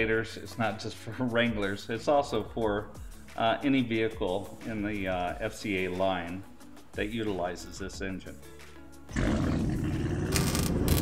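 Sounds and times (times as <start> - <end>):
loud roar: 9.1 - 11.0.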